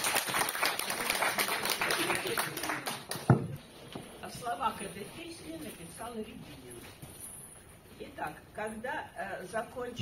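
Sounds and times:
audience applauding: 0:00.0 - 0:03.3.

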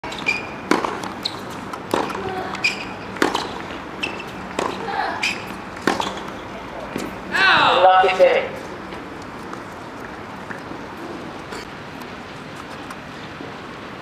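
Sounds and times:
shoe squeaks: 0:00.0 - 0:07.2, 0:11.0 - 0:11.7
ball bouncing: 0:00.1 - 0:07.2
tennis ball struck by rackets: 0:00.1 - 0:07.2
person speaking: 0:06.5 - 0:08.6.

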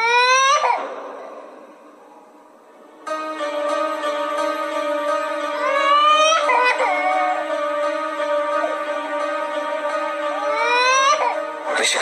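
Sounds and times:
background music drone: 0:00.0 - 0:12.0
infant crying: 0:05.3 - 0:08.0, 0:10.2 - 0:11.6.

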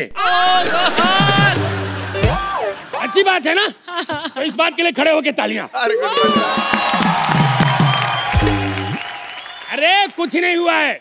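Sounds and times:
studio audience applauding: 0:00.5 - 0:03.2, 0:06.2 - 0:10.9.

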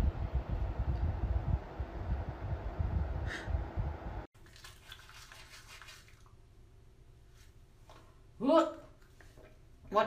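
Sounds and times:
toothbrushes scrubbing teeth: 0:04.5 - 0:06.3.

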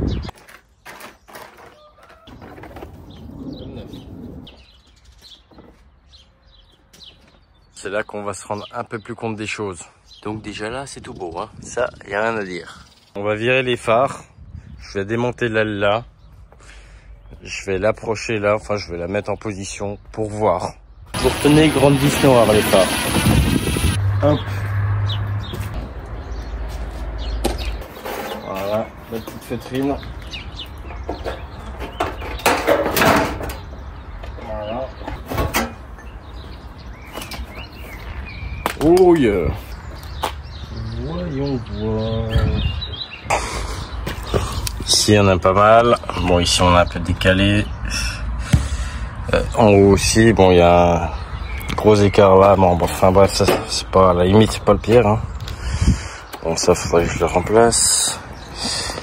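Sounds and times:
birds chirping: 0:00.0 - 0:59.0.

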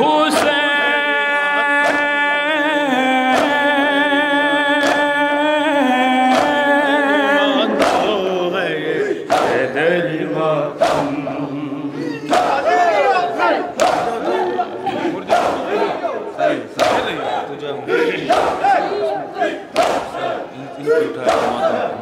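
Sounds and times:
men shouting and chanting: 0:00.0 - 0:22.0
hands striking chests in unison: 0:01.8 - 0:02.2, 0:03.2 - 0:03.9, 0:04.7 - 0:05.2, 0:06.2 - 0:06.8, 0:07.6 - 0:08.3, 0:09.2 - 0:09.8, 0:10.7 - 0:11.3, 0:12.3 - 0:14.4, 0:15.2 - 0:17.4, 0:18.2 - 0:22.0.

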